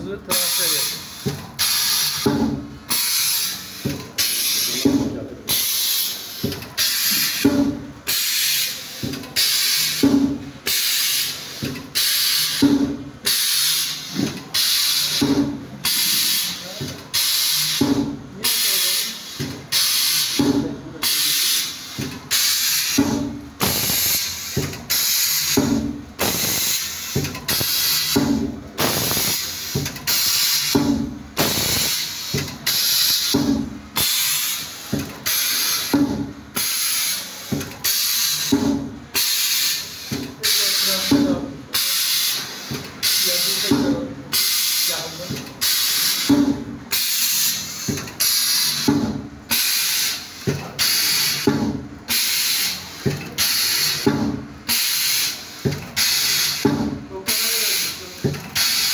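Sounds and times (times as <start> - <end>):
machine hissing: 0.3 - 58.9.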